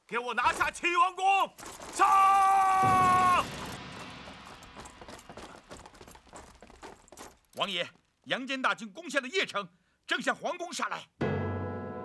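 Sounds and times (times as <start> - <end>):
man yelling battle cry: 1.9 - 3.6.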